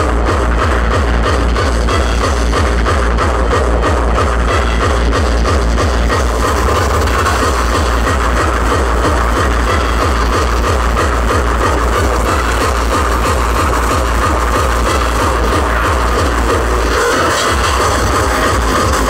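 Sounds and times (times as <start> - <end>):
fast kick drum: 0.0 - 19.0
hardcore electronic music: 0.0 - 19.0.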